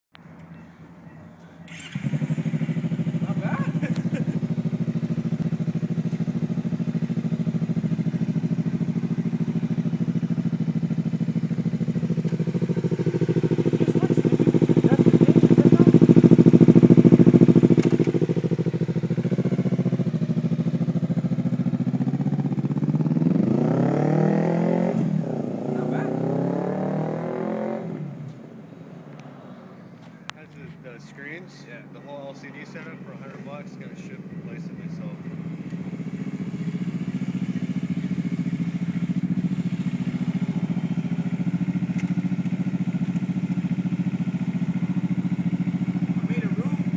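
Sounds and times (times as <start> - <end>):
motorcycle engine idling: 1.6 - 28.3, 30.0 - 46.9
motorcycle riding off: 1.7 - 46.9.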